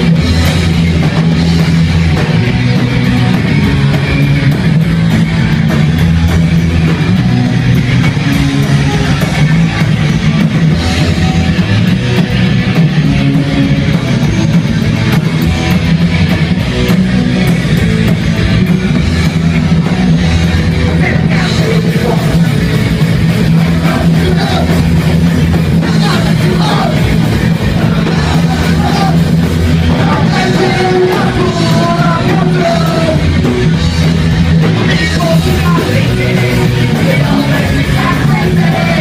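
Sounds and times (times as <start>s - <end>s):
rock band playing: 0.0s - 39.0s.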